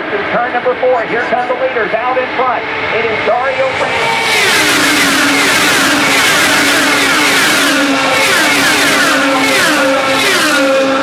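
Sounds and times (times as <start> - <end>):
race cars passing at speed: 0.0 - 11.0.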